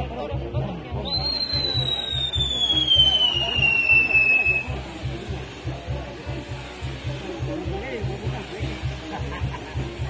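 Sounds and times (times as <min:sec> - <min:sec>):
music with steady low beat: 0:00.0 - 0:10.0
whistling firework: 0:01.0 - 0:04.8.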